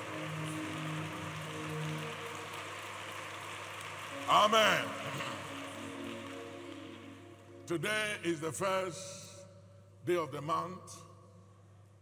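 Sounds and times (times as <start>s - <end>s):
congregation clapping: 0.0s - 8.5s.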